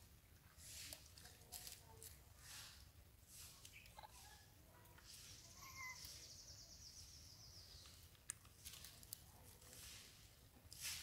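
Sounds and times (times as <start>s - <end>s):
faint chirp: 5.1s - 8.2s.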